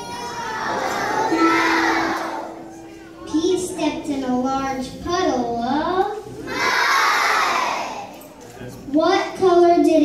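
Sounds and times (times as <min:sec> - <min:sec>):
children calling out together: 0:00.0 - 0:03.4, 0:06.4 - 0:08.2.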